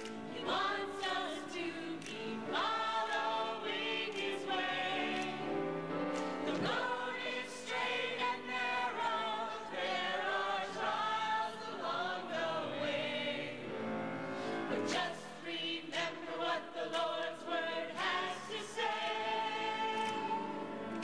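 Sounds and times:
choir singing: 0.0s - 21.0s.

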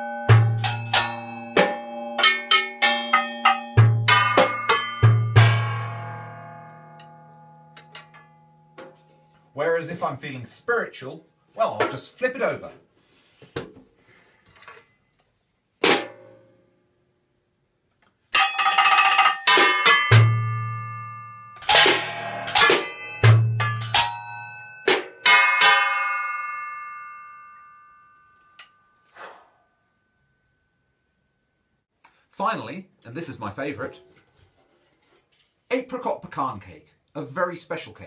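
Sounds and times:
sticks striking metal tin: 0.3s - 5.9s, 7.7s - 9.2s, 18.4s - 20.4s, 21.6s - 26.0s.

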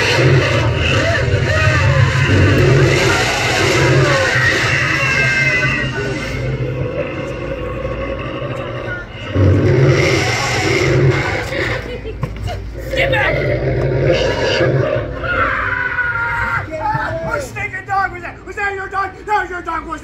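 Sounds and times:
indistinct voices: 0.0s - 20.0s.

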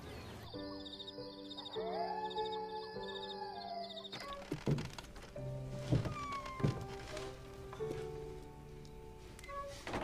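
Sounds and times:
soft film score music: 0.0s - 10.0s.

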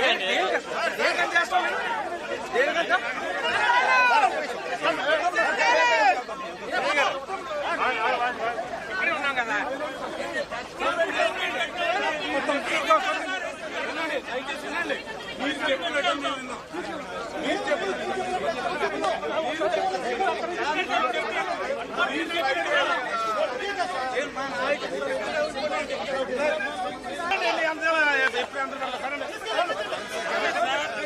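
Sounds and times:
crowd babble: 0.0s - 31.0s.

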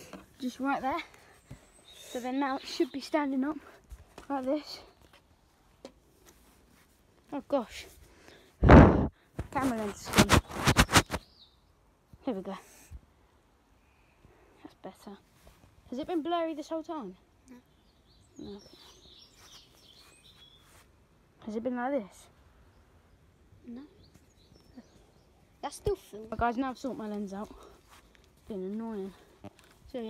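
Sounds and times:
low background noise: 0.0s - 30.0s
faint bird chirps: 0.4s - 3.5s, 17.4s - 21.6s.

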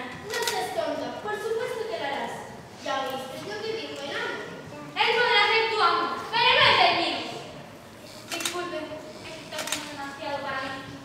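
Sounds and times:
sharp clicks: 8.3s - 8.6s.

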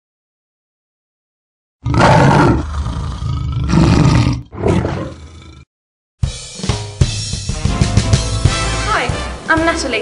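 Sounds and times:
big cat roaring: 1.8s - 5.7s.

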